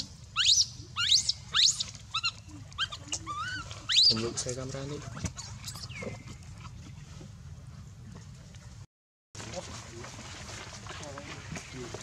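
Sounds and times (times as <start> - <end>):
baby monkey crying: 0.4 - 4.4.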